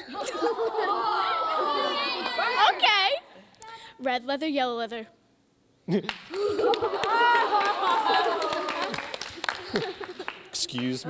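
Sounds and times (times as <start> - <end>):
children chattering: 0.6 - 3.2.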